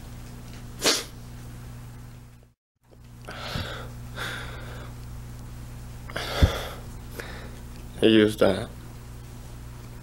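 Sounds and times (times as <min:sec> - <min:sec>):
steady low hum: 0:00.0 - 0:10.0
man sniffing while crying: 0:00.8 - 0:01.1.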